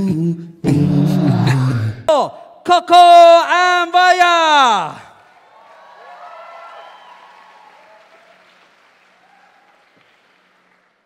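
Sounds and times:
audience applauding: 0:05.0 - 0:11.0
whoops and cheers: 0:05.3 - 0:08.5, 0:09.1 - 0:10.1.

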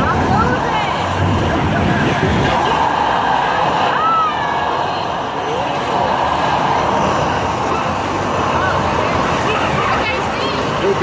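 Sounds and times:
hubbub of voices: 0:00.0 - 0:11.0
racing arcade game sounds: 0:00.0 - 0:11.0.

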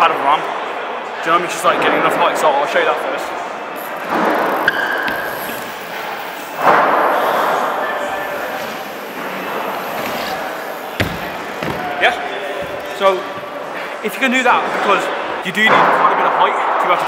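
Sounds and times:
small wheels rolling on wooden ramp: 0:04.0 - 0:13.9
bike landing knocks: 0:08.1 - 0:14.0.

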